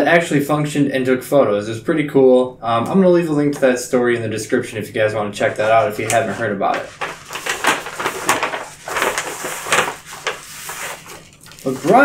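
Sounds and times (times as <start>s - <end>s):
plastic sheets scraping: 5.4s - 12.0s
paper envelope rustling: 5.5s - 12.0s.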